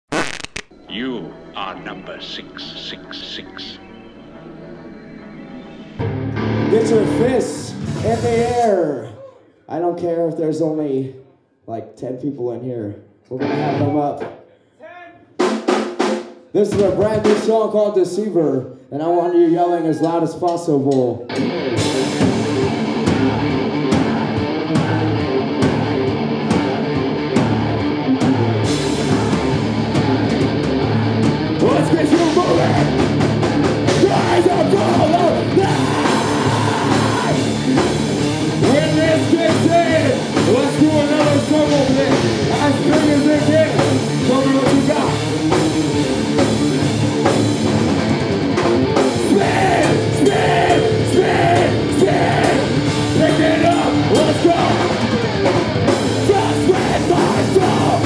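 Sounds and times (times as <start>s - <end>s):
distorted electric guitar: 0.0s - 8.7s, 21.3s - 58.0s
metal band playing: 6.0s - 8.8s, 21.3s - 58.0s.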